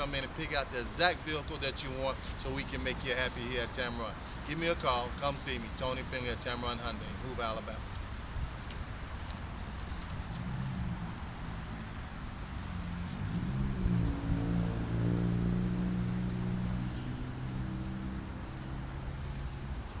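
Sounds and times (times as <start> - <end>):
vehicle engine hum: 7.8 - 20.0
wind on microphone: 9.9 - 19.0.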